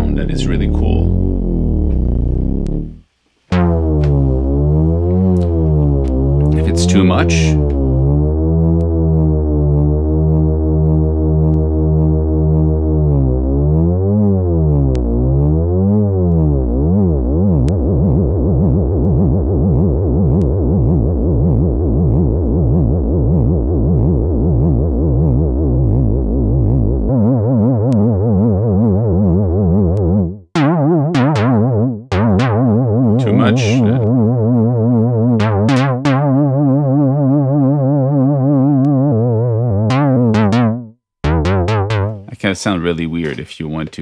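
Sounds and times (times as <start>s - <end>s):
synthesizer note with wobbling pitch: 0.0s - 42.3s.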